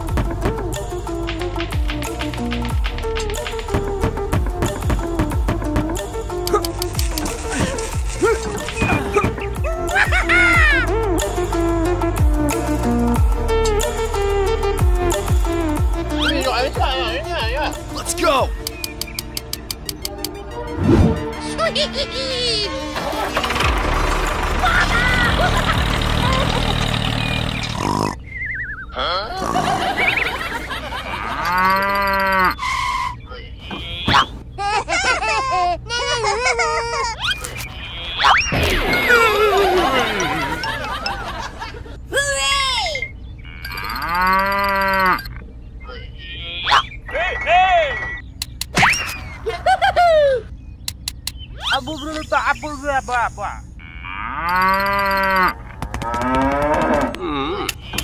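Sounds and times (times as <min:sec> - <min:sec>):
tractor engine running: 0:00.0 - 0:22.0, 0:22.6 - 0:28.8, 0:29.6 - 0:42.3, 0:54.4 - 0:58.0
sharp clicks: 0:18.6 - 0:20.4, 0:48.0 - 0:49.2, 0:50.8 - 0:51.5
falling warbling whistle: 0:28.3 - 0:29.0, 0:48.8 - 0:49.4
squeaky voice-like chirps: 0:31.7 - 0:34.4, 0:37.1 - 0:38.6, 0:44.7 - 0:48.2, 0:48.8 - 0:49.3, 0:51.6 - 0:53.1.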